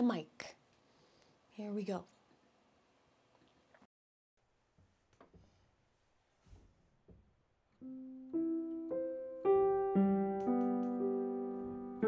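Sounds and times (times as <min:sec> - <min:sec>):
upright piano playing: 0:07.8 - 0:12.0.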